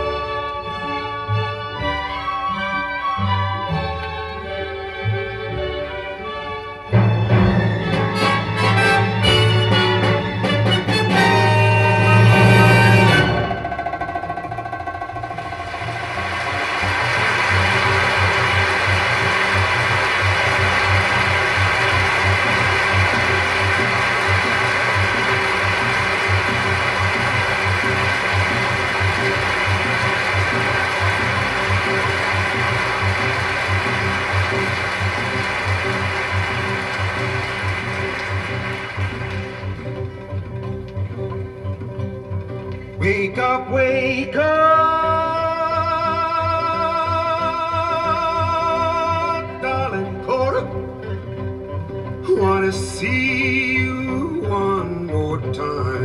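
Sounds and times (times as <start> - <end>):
orchestra playing: 0.0 - 56.0
audience applause: 7.7 - 41.5.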